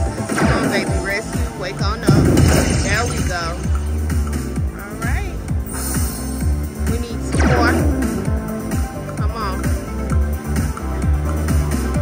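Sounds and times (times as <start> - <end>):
slot machine bonus music: 0.0 - 12.0.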